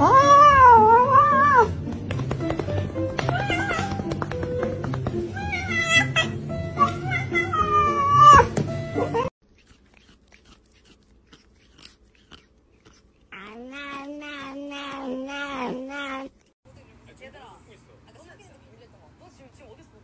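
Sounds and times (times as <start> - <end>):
cat yowling: 0.0 - 1.7, 3.3 - 4.1, 5.4 - 9.3, 13.3 - 16.3.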